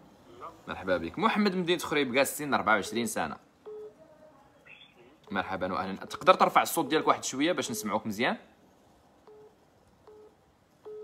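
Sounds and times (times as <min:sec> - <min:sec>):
telephone line beeps: 0:02.8 - 0:03.9, 0:09.3 - 0:11.0.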